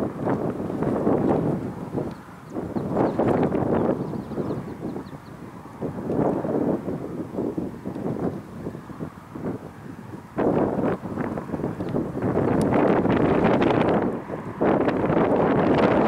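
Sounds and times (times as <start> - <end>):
wind gusting across microphone: 0.0 - 16.0.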